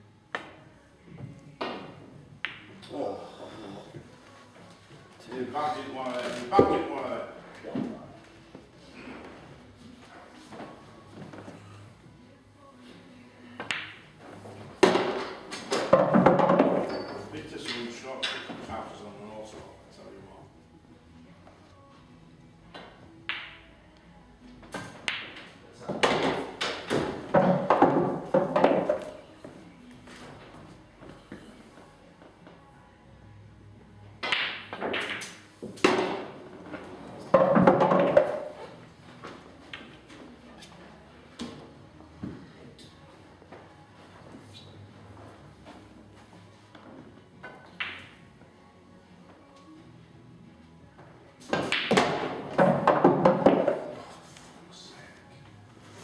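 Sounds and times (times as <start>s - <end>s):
background music: 0.0s - 56.0s
pool balls knocking together: 14.8s - 16.9s, 24.7s - 29.2s, 34.2s - 38.6s, 51.4s - 54.0s
cue striking ball: 51.5s - 54.0s.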